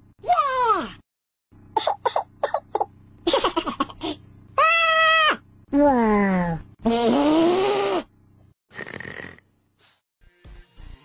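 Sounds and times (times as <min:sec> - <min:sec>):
person making creature calls: 0:04.6 - 0:08.1.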